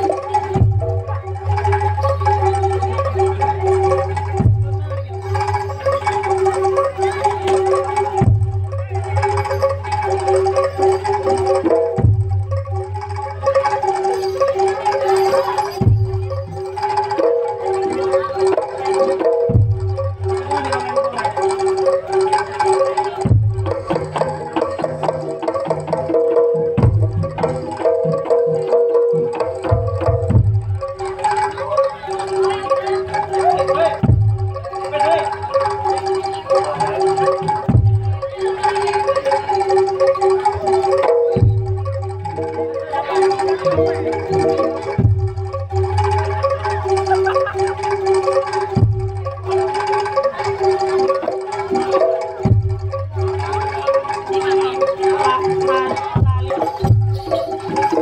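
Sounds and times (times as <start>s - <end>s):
drum strokes: 0.0s - 58.0s
live ensemble music: 0.0s - 58.0s
percussion: 0.0s - 58.0s
wind instrument melody: 0.0s - 58.0s.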